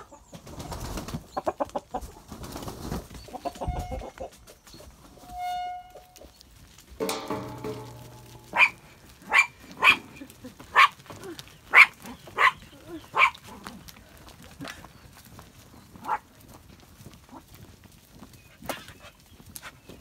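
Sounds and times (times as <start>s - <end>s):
chickens clucking and flapping: 0.0s - 5.2s
drawn-out chicken call: 0.0s - 13.6s
small dog barking: 11.7s - 12.6s, 13.2s - 13.4s.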